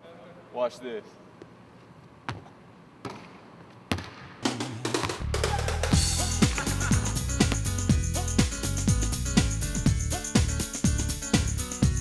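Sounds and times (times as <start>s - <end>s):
basketball striking hoop: 3.9s - 4.3s
music with drums: 4.4s - 12.0s.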